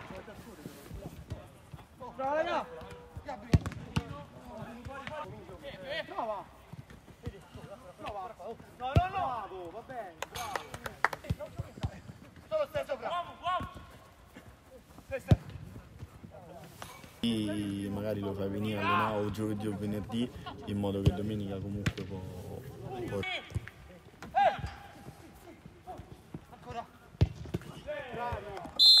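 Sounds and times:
football kicked with a thud: 0:03.5 - 0:04.1, 0:27.2 - 0:27.7
players shouting: 0:17.3 - 0:20.1
referee's whistle blast: 0:28.8 - 0:29.0.

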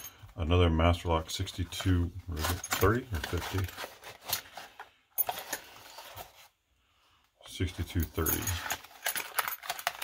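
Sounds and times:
cardboard rustling: 0:01.4 - 0:06.6
keys jingling: 0:08.0 - 0:10.0.

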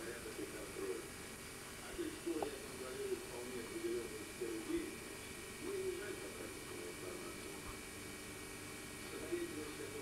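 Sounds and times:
tape hiss: 0:00.0 - 0:10.0.

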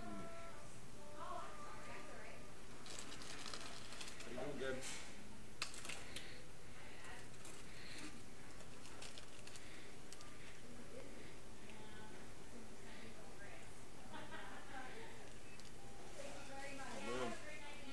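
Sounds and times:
paper bags crinkling: 0:02.7 - 0:04.6, 0:05.6 - 0:06.4, 0:07.0 - 0:10.3.

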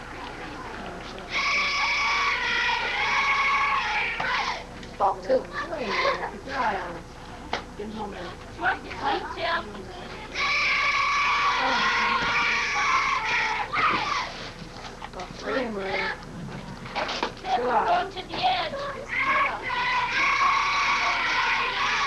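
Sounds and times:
children shouting and chanting: 0:01.3 - 0:04.7, 0:10.2 - 0:14.4, 0:18.7 - 0:22.0.

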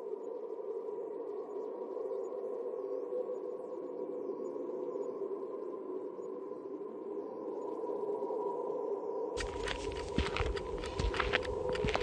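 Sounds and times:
dry crackling clicks: 0:09.4 - 0:12.0
low drone hum: 0:09.4 - 0:12.0.

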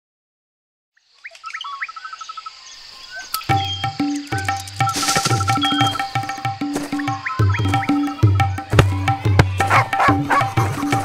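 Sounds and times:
steady high hiss: 0:01.0 - 0:08.6
birds chirping: 0:01.0 - 0:11.0.

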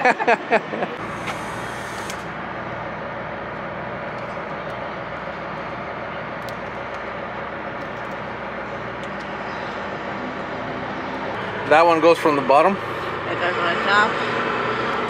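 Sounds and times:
engine droning: 0:00.0 - 0:15.0.

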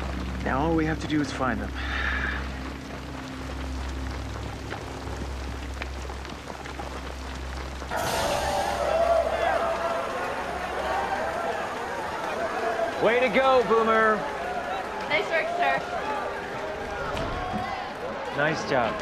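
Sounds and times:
crowd cheering and shouting: 0:07.9 - 0:19.0.

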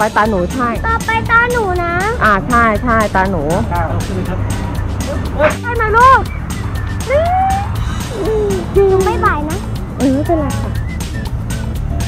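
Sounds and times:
woman calling out: 0:07.0 - 0:09.3.

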